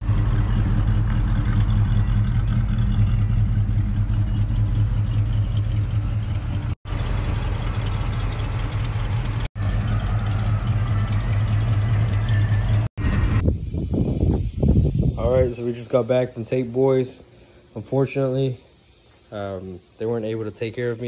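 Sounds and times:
car engine idling: 0.0s - 13.4s.

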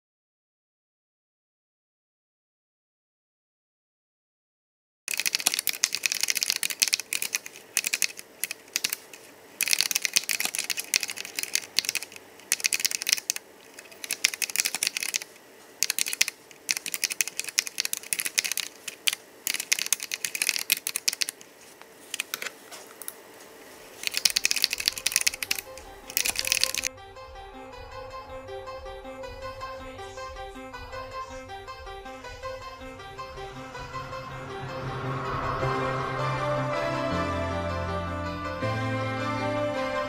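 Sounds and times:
computer keyboard typing: 5.1s - 21.5s, 24.0s - 26.9s.

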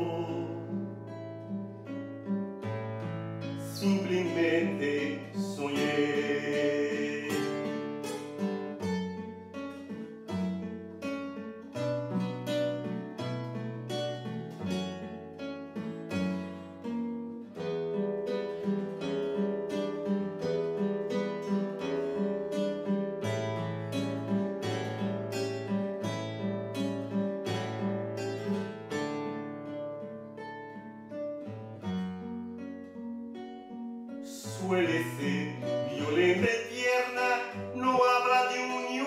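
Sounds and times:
classical guitar fingerpicking: 0.0s - 39.0s.

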